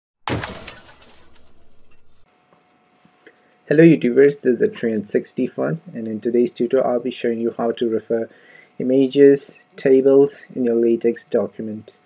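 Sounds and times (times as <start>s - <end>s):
glass breaking: 0.3s - 2.2s.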